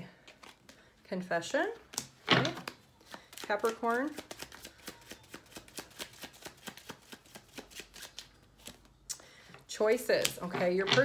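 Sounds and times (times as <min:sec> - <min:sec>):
cards being shuffled: 0:00.2 - 0:00.8, 0:01.8 - 0:08.9.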